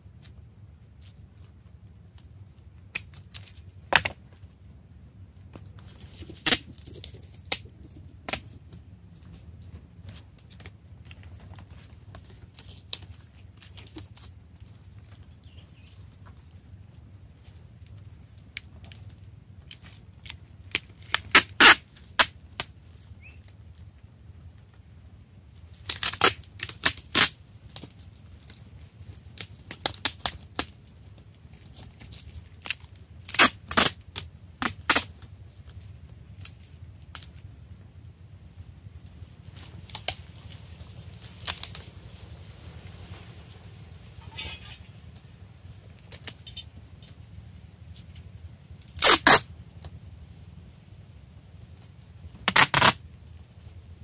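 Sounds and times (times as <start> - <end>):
packing tape ripping off roll: 2.8 - 4.3, 5.8 - 9.4, 10.0 - 15.6, 18.5 - 23.1, 25.7 - 37.4, 39.6 - 41.9, 48.8 - 49.5, 52.3 - 53.0.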